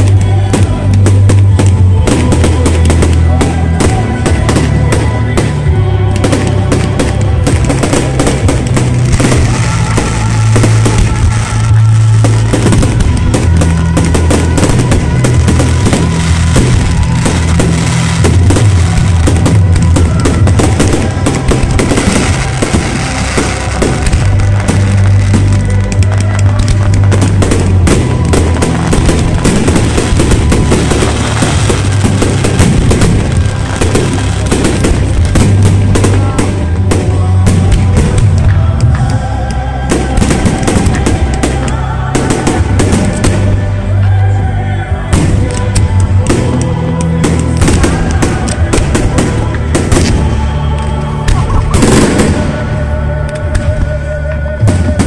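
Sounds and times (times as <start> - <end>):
fireworks bursting and crackling: 0.0 - 55.0
loud show music with bass: 0.0 - 55.0.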